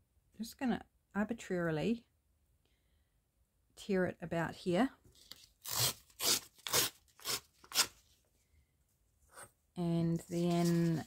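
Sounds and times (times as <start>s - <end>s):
paper page tearing: 5.2s - 8.0s.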